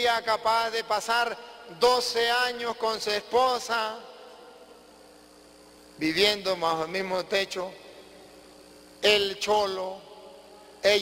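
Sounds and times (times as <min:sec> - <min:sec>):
man's voice: 0:00.0 - 0:04.6, 0:06.0 - 0:08.1, 0:09.0 - 0:11.0
faint hum and hiss: 0:00.0 - 0:11.0.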